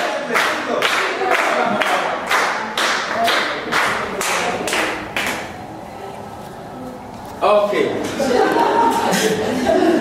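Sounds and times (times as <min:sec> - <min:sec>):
group clapping in unison: 0:00.0 - 0:05.5.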